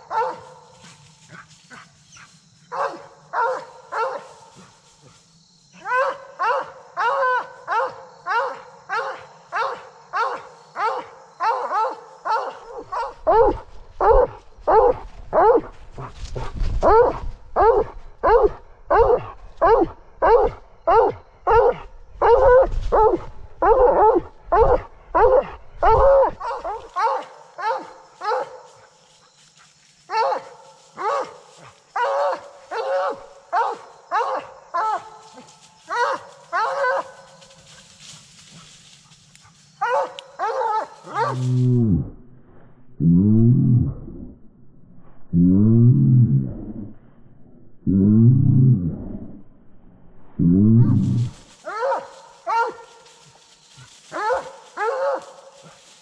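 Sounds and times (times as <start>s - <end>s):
hound baying: 0.0s - 4.6s, 5.8s - 28.8s, 30.1s - 41.8s, 50.8s - 55.9s
low rumble: 41.6s - 51.4s.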